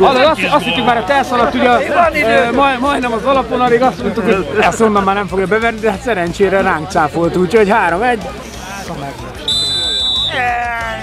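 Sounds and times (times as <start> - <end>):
referee's whistle blast: 9.4 - 10.5.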